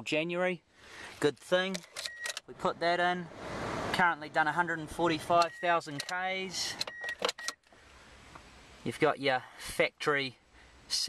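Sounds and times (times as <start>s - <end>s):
man speaking: 0.0s - 0.6s, 1.2s - 1.8s, 2.4s - 6.8s, 8.8s - 11.0s
faint background hiss in car: 0.1s - 11.0s.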